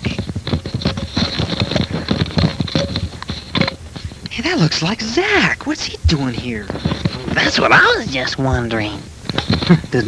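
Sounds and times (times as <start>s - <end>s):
hurried footsteps: 0.0s - 5.2s, 6.0s - 10.0s.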